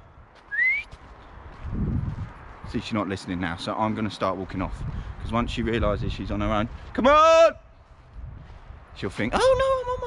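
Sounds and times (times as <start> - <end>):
man whistling: 0.5 - 0.9.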